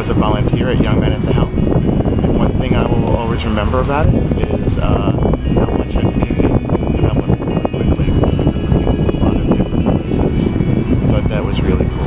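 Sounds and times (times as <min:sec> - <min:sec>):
rough rumbling noise with crackle: 0:00.0 - 0:12.0.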